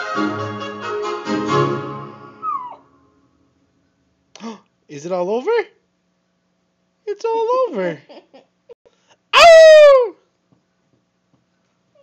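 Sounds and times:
classical music: 0.0s - 2.6s.

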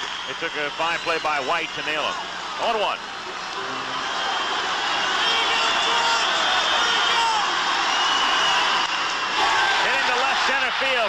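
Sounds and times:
stadium crowd cheering: 0.0s - 11.0s
whistles: 7.8s - 9.3s.

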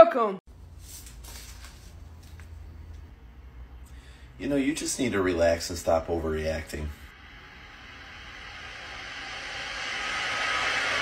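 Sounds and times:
rushing hiss-like noise: 7.1s - 11.0s.

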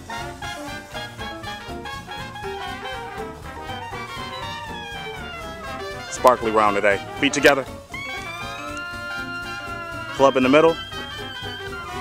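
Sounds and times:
swing music with brass: 0.0s - 12.0s.

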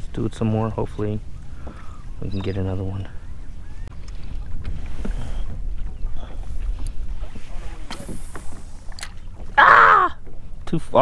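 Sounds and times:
waves lapping against hull: 0.0s - 11.0s
wind rumble on microphone: 0.0s - 11.0s.

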